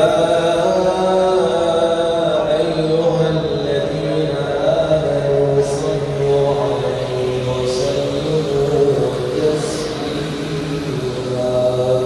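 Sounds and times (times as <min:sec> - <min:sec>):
person chanting: 0:00.0 - 0:12.0
steady low hum: 0:00.0 - 0:12.0.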